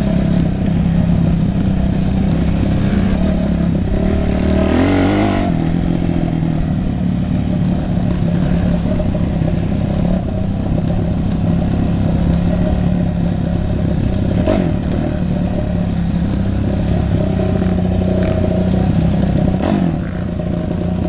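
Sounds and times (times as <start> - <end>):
bike clattering over rough trail: 0.0 - 21.0
dirt bike engine running: 0.0 - 21.0.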